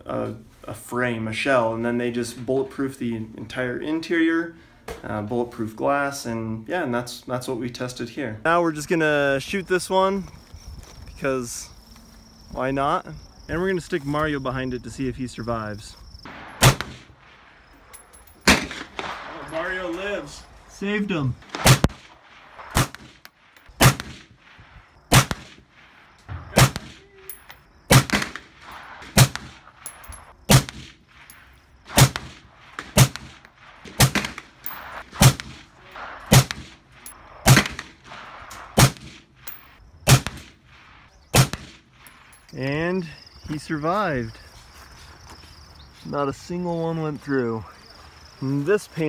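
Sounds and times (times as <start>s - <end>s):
gunshot with echo: 16.3s - 17.1s, 21.5s - 23.2s, 26.3s - 27.0s, 27.9s - 29.6s, 34.0s - 36.8s, 37.4s - 39.2s, 41.4s - 41.8s.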